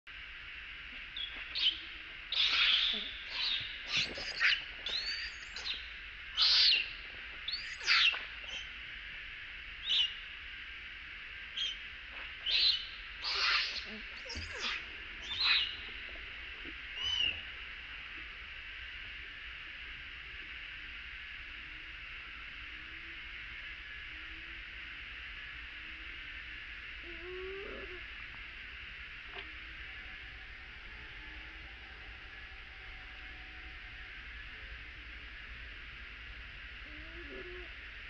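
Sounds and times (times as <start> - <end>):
baby monkey screeching: 1.6 - 5.8, 6.4 - 6.9, 7.5 - 8.7, 12.5 - 15.8, 17.0 - 17.4.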